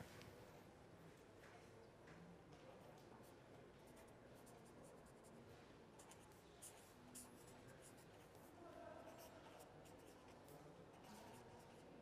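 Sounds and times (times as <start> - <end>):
pen scratching on paper: 6.0 - 11.8.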